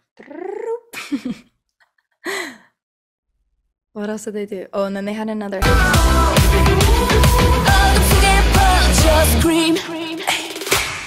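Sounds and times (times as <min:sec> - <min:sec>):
woman laughing breathily: 0:00.9 - 0:01.5, 0:02.2 - 0:02.8
woman sighing: 0:02.2 - 0:02.8.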